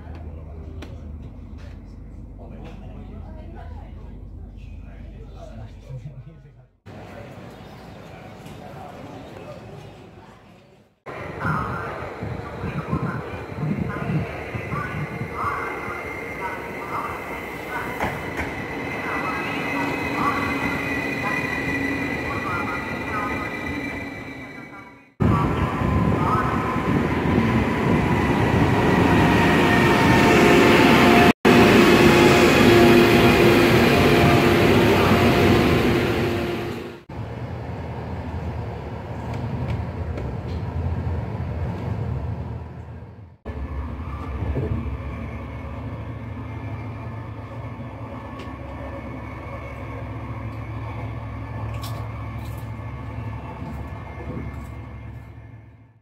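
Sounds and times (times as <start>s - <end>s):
train interior rumble and hum: 0.0s - 7.6s, 11.1s - 56.0s
train wheel and motor rush: 11.1s - 23.9s, 25.2s - 55.9s.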